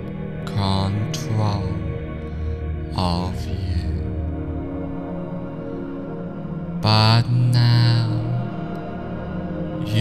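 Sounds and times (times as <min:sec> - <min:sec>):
ambient meditation music: 0:00.0 - 0:10.0
deep chanted voice: 0:00.0 - 0:10.0.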